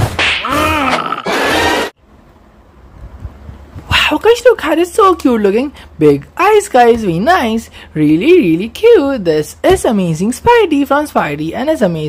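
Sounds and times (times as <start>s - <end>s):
cartoon monster growl: 0.5s - 1.9s.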